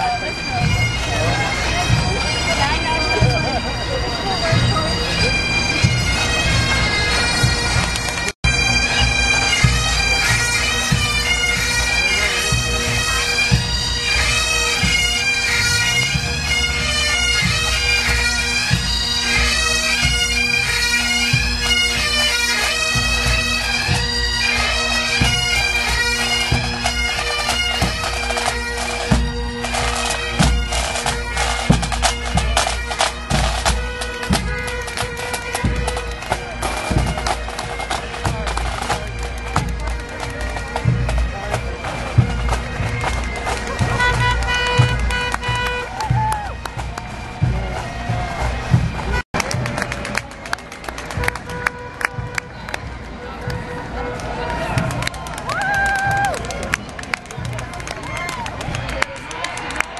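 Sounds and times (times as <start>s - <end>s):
bagpipes playing a tune: 0.0s - 55.2s.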